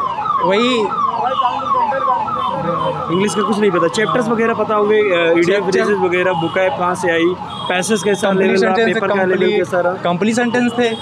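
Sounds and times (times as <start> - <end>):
siren sweeping: 0.0 - 9.7.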